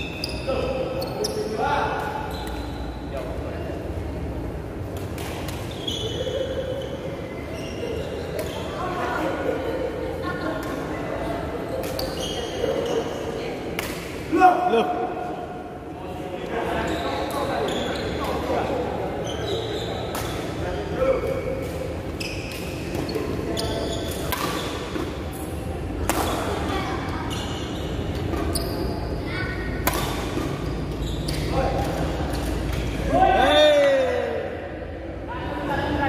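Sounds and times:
rackets hitting shuttlecock: 0:04.9 - 0:05.7, 0:13.7 - 0:14.2, 0:20.1 - 0:20.5, 0:24.0 - 0:25.3, 0:25.9 - 0:26.6, 0:29.7 - 0:33.0.

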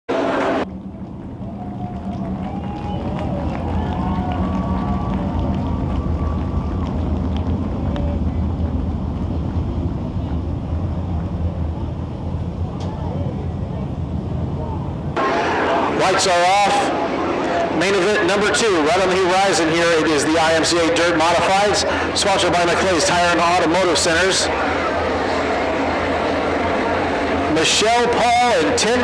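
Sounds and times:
race car engines rumbling: 0:00.1 - 0:29.0
man speaking over public address: 0:15.2 - 0:24.5, 0:27.5 - 0:29.0.

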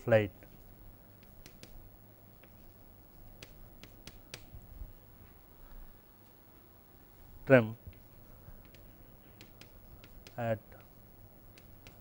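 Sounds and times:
chalk tapping on blackboard: 0:01.2 - 0:01.8, 0:03.4 - 0:04.5, 0:07.9 - 0:12.0.

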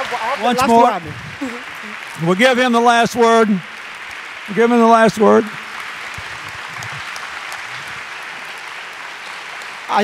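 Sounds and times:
audience applauding: 0:00.0 - 0:10.0
man speaking: 0:00.4 - 0:01.4, 0:02.2 - 0:03.7, 0:04.5 - 0:05.6.

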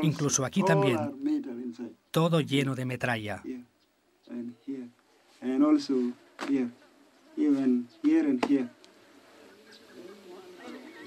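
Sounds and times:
man speaking: 0:00.0 - 0:03.7.

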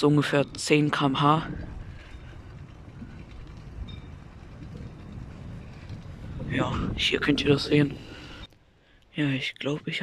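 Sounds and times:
bike tyres rolling on paving: 0:00.0 - 0:08.5.

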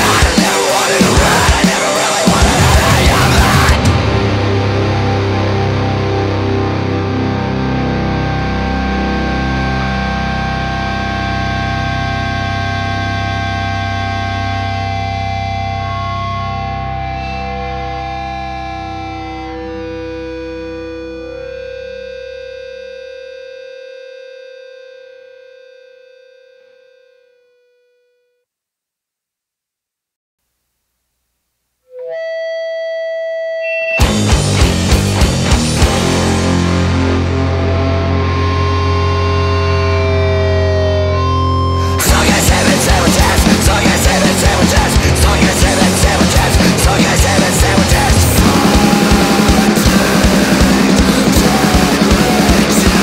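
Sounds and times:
distorted guitar and bass chord: 0:00.0 - 0:27.6, 0:33.9 - 0:53.0.

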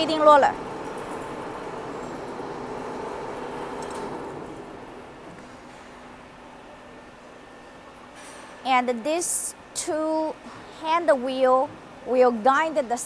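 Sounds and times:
roll forming machine humming: 0:00.0 - 0:08.0.

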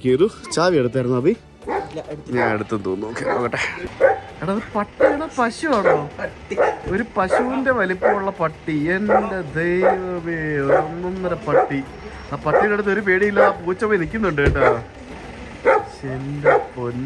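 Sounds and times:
people's voices: 0:00.0 - 0:17.0.

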